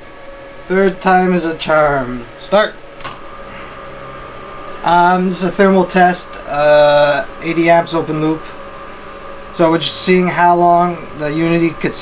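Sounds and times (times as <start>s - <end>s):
electric motors humming: 0.0s - 12.0s.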